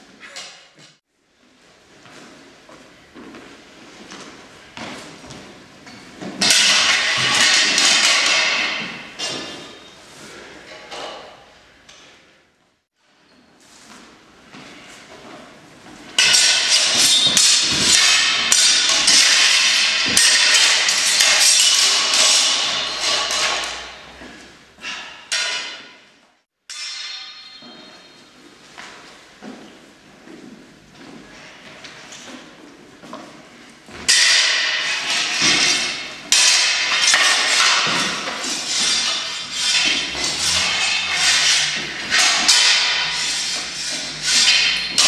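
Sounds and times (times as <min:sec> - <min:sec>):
swords clashing: 0:06.2 - 0:09.9, 0:16.2 - 0:26.0, 0:26.7 - 0:28.2, 0:34.0 - 0:45.0.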